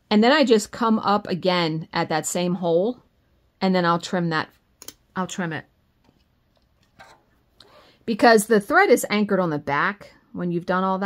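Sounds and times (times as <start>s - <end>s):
thread rasping through fabric: 6.0s - 8.0s.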